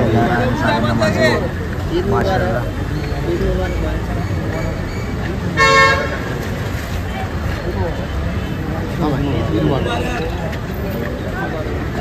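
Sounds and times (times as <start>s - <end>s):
crowd chatter: 0.0s - 12.0s
street traffic rumble: 0.0s - 12.0s
vehicle horn toot: 5.6s - 6.2s.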